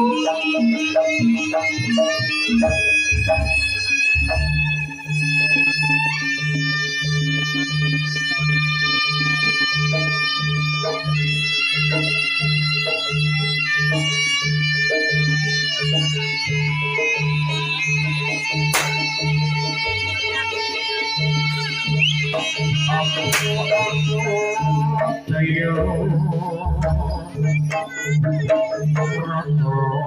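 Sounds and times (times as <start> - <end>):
whip crack: 18.7 - 19.2, 23.3 - 23.7.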